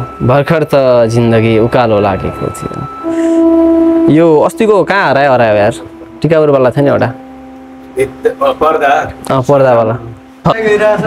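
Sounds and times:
held instrumental note: 0.0s - 11.0s.

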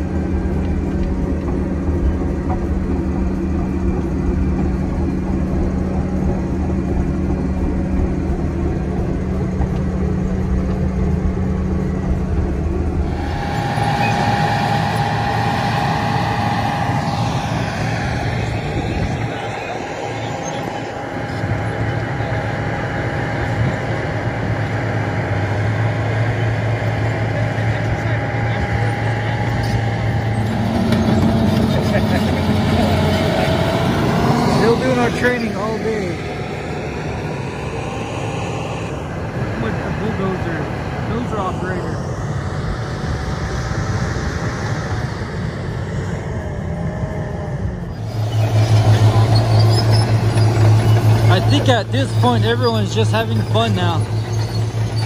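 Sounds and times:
bulldozer diesel engines running: 0.0s - 55.0s
thin steady whine: 0.0s - 55.0s.

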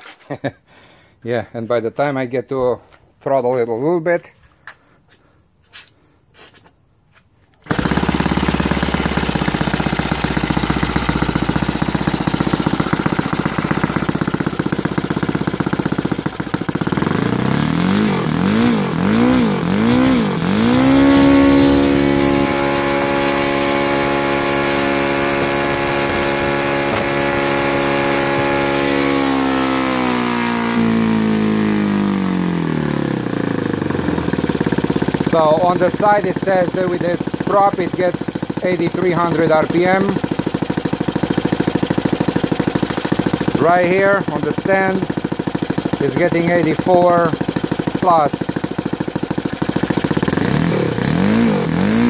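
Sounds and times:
model airplane engine revving: 7.6s - 52.0s.

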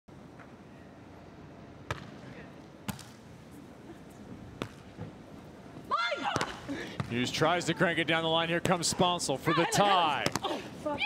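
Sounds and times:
faint crowd noise: 0.3s - 11.0s.

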